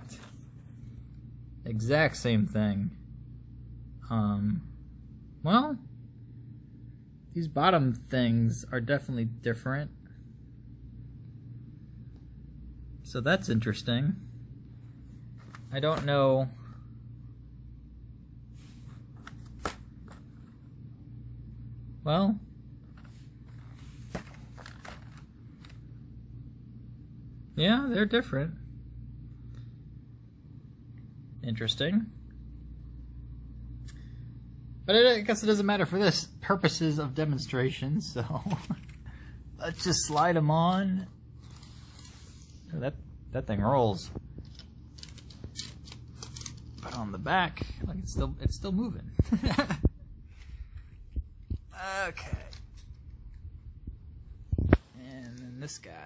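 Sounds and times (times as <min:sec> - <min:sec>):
low steady hum: 0:00.0 - 0:56.0
small plastic parts clicking and rattling: 0:44.4 - 0:47.0.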